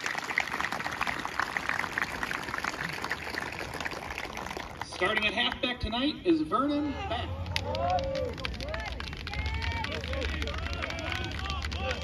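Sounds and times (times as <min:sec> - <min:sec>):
crowd applauding: 0:00.0 - 0:05.6, 0:07.1 - 0:12.0.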